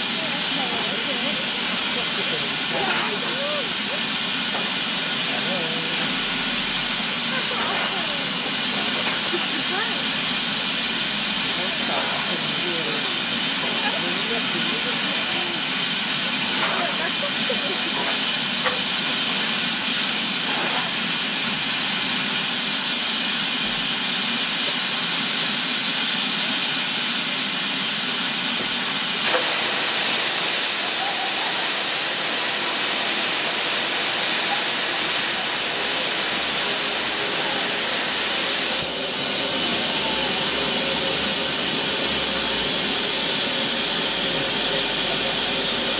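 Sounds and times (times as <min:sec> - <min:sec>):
steam locomotive hissing: 0:00.0 - 0:45.9.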